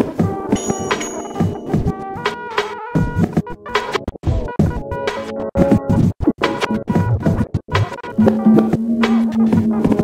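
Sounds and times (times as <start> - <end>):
record scratching on a turntable: 4.4 - 10.0.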